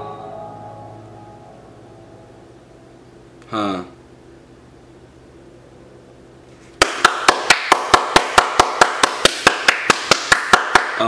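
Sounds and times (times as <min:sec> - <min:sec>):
person clapping hands: 0:06.8 - 0:11.0.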